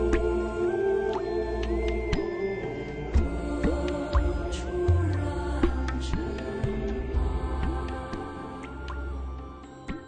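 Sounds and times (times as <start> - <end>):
slow sustained music notes: 0.0 - 10.0.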